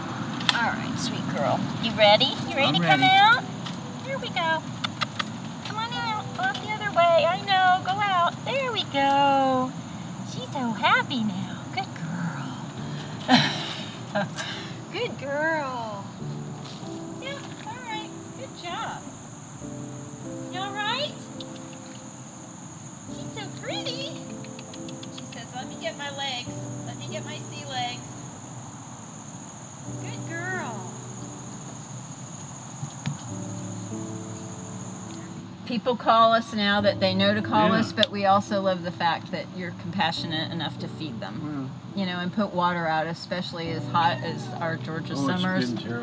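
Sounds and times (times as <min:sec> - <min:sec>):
background music: 0:00.0 - 0:09.7, 0:10.3 - 0:22.3, 0:23.0 - 0:28.4, 0:29.9 - 0:32.0, 0:33.1 - 0:46.0
insects droning: 0:00.0 - 0:46.0.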